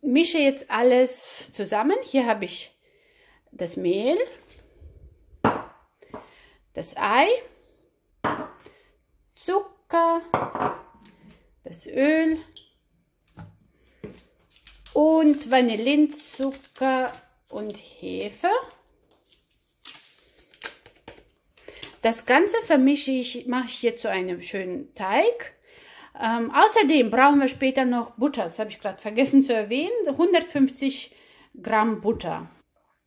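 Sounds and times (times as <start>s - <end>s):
yeast rustling into a plastic bowl: 13.2s - 22.0s.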